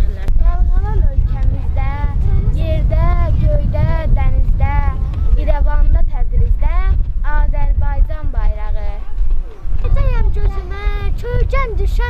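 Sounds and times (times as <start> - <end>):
child's sing-song voice: 0.0 - 12.0
wind rumble on microphone: 0.0 - 12.0.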